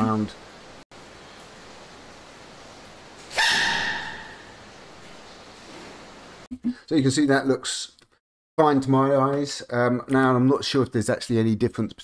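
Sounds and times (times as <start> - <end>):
faint steady hiss: 0.0 - 3.4.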